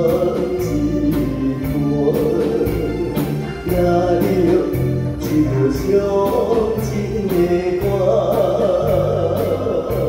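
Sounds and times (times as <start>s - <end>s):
bass notes: 0.0s - 10.0s
live band playing slow song: 0.0s - 10.0s
man singing into microphone: 0.0s - 10.0s.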